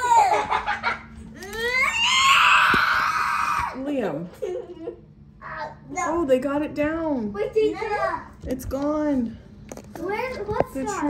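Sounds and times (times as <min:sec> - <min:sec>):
child squealing: 0:01.4 - 0:03.7.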